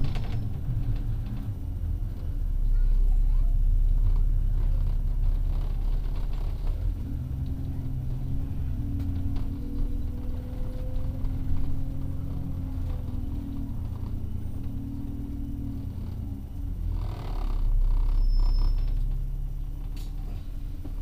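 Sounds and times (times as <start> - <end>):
bus engine rumbling: 0.0 - 21.0.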